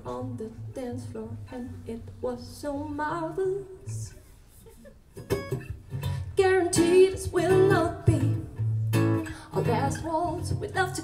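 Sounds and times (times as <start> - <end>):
acoustic guitar strums: 5.2 - 7.0.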